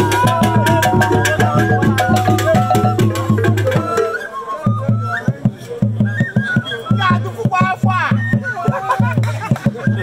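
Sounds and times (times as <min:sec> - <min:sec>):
high melodic line: 0:00.0 - 0:04.2
voices singing: 0:00.0 - 0:04.5
drums beating quick rhythm: 0:00.0 - 0:10.0.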